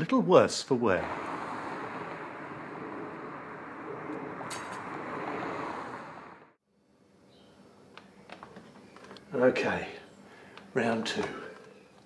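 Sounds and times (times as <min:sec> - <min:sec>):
rushing street ambience: 0:00.7 - 0:06.6.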